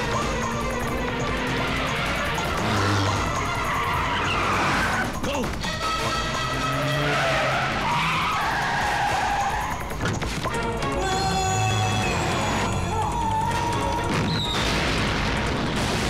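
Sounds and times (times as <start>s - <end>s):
car engines revving: 0.0s - 11.0s
tyres skidding: 0.0s - 15.6s
background film score: 0.0s - 16.0s.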